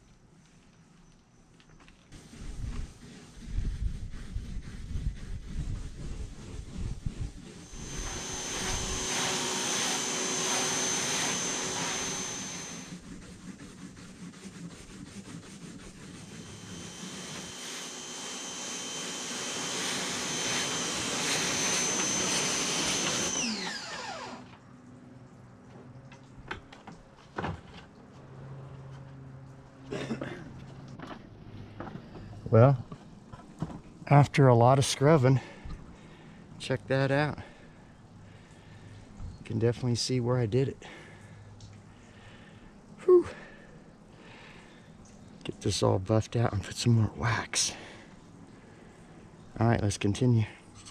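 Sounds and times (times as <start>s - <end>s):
motor whining: 7.4s - 13.0s, 16.2s - 24.6s.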